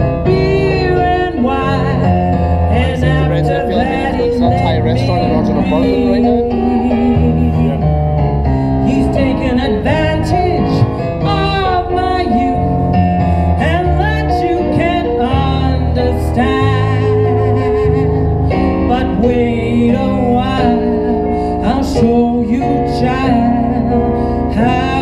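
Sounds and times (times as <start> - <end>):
electric guitar: 0.0 - 25.0
keyboard: 0.0 - 25.0
walking bass line: 0.0 - 25.0
person singing: 2.7 - 8.0.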